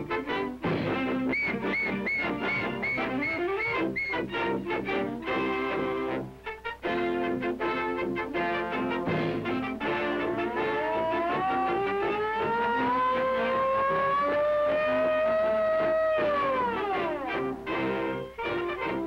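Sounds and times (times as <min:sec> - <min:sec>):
brassy orchestral cartoon music: 0:00.0 - 0:19.0
fire engine siren wailing: 0:01.2 - 0:04.3, 0:09.4 - 0:19.0.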